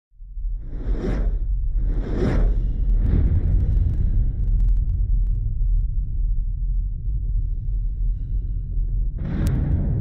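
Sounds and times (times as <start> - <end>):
deep steady rumble: 0.2 - 10.0
whoosh: 0.5 - 5.4.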